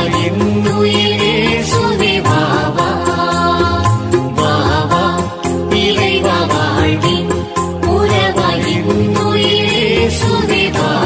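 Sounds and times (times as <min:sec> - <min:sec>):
instrumental devotional song: 0:00.0 - 0:11.0.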